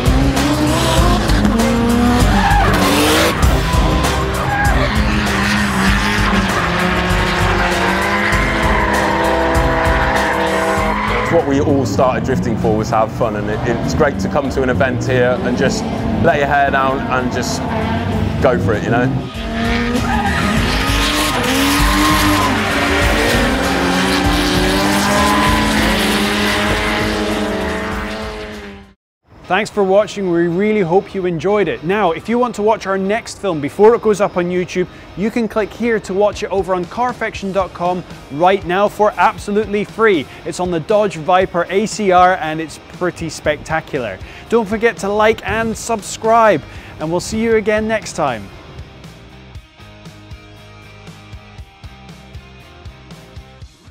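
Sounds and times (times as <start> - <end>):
car engines revving: 0.0 - 29.0, 31.9 - 53.4
background music: 0.0 - 53.9
tyres squealing: 0.4 - 11.6, 19.1 - 27.2.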